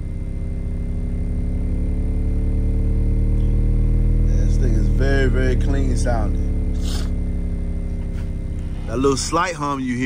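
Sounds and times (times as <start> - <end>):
deep bass tone rising in pitch: 0.0 - 10.0
slight hum: 0.0 - 10.0.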